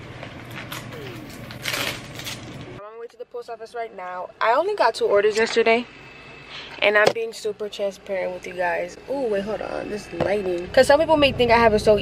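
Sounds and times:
low room hum: 0.0s - 12.0s
jewelry and packaging clinking: 0.5s - 2.6s.

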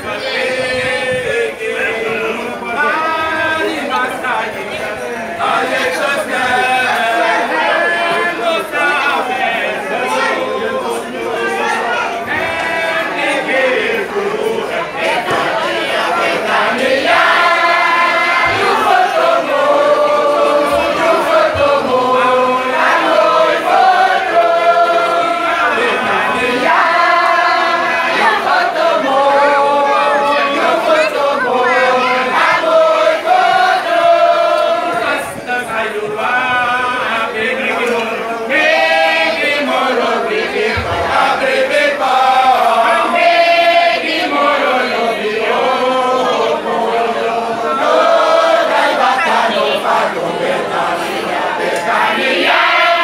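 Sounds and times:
choir singing: 0.0s - 53.0s.

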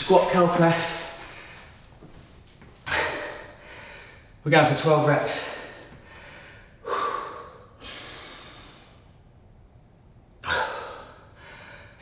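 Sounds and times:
man breathing hard: 1.1s - 2.1s, 2.8s - 4.4s, 5.3s - 9.2s, 10.4s - 12.0s.

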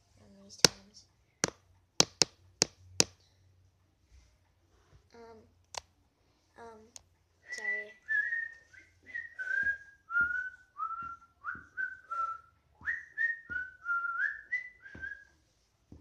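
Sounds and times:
person whistling a tune: 7.4s - 15.4s.

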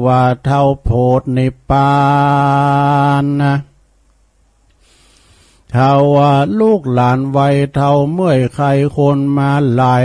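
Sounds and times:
man chanting: 0.0s - 3.8s, 5.7s - 10.0s
faint hiss: 0.0s - 8.0s.

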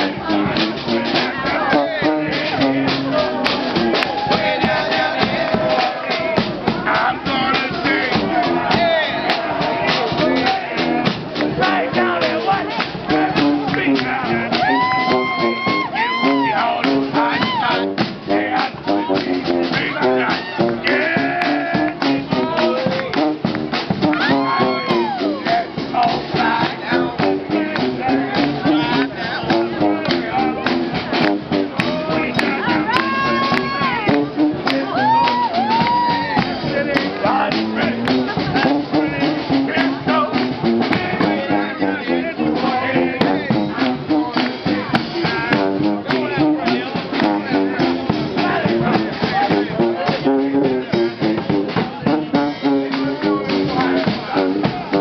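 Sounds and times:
bass drum beat: 0.0s - 55.0s
saxophone: 0.0s - 55.0s
trumpet: 0.0s - 55.0s.

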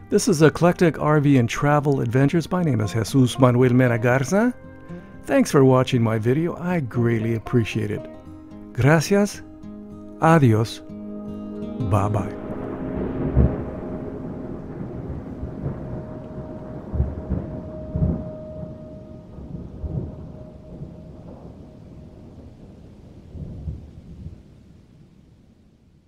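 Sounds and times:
thunder rumbling: 11.4s - 25.7s
rain-like hiss: 11.9s - 26.0s.

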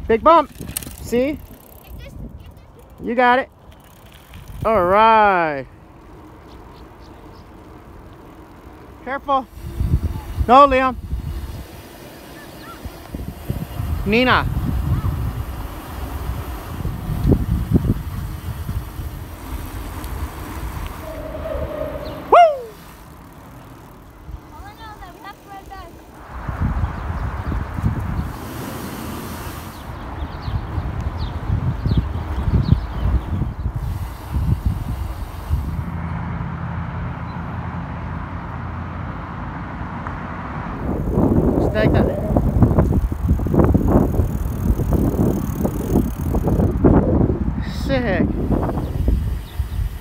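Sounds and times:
wind noise: 0.0s - 3.2s, 9.5s - 11.9s, 12.6s - 23.0s, 26.2s - 36.3s, 39.8s - 50.0s
bicycle rolling on pavement: 0.0s - 50.0s
short sound rising and falling in pitch: 20.9s - 23.0s.

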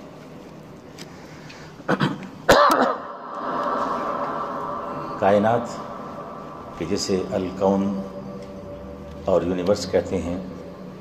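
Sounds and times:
man clearing his throat: 1.9s - 3.1s.

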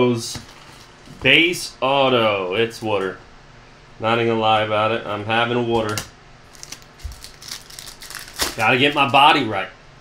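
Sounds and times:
wrapper crinkling and rustling: 6.5s - 9.3s.

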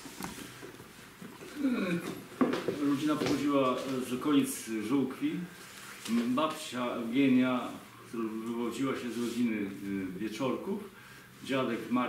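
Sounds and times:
man talking: 1.6s - 5.5s, 6.1s - 12.0s.

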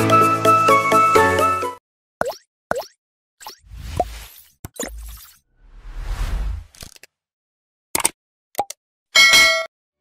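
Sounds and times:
synthetic whooshes: 3.6s - 6.7s.

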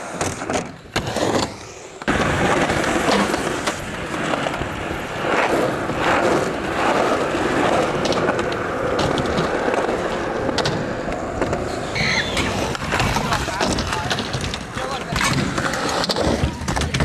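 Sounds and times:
skateboard wheels rolling on concrete: 0.0s - 17.0s.

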